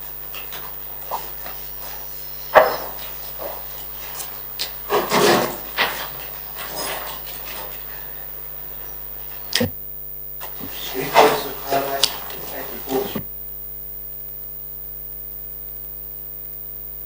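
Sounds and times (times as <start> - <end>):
papers rustling: 0.0 - 9.6, 10.4 - 13.2
faint room hum: 0.0 - 17.0
chair being moved: 0.6 - 9.7, 10.4 - 13.2.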